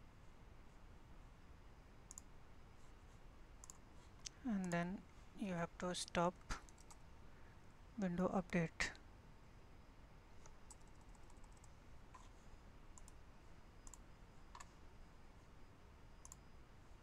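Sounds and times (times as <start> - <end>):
computer mouse clicks: 2.1 - 2.3, 3.6 - 4.8, 6.4 - 7.0, 10.4 - 12.3, 13.0 - 13.2, 13.8 - 14.8, 16.2 - 16.4.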